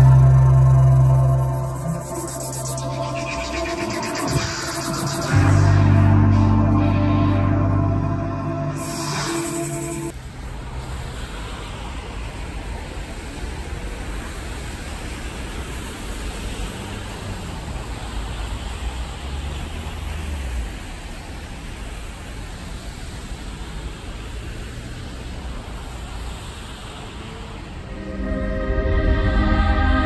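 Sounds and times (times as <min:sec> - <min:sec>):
city traffic noise: 0:00.0 - 0:30.0.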